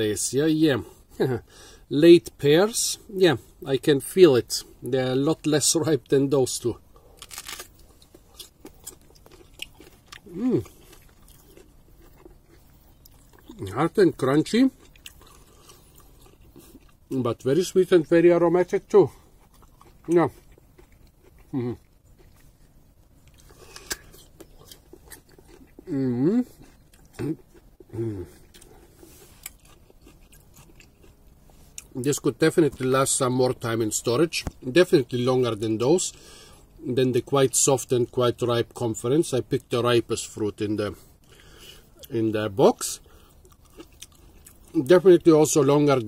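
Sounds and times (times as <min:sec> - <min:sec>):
crunchy pear chewing: 0:06.6 - 0:17.5, 0:18.1 - 0:33.6, 0:41.2 - 0:45.7
crisp crunches of biting a pear: 0:07.1 - 0:13.8, 0:23.3 - 0:32.0.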